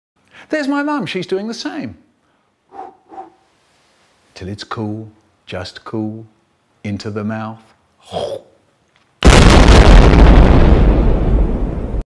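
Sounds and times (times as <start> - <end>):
explosion with deep rumble: 9.2 - 12.0.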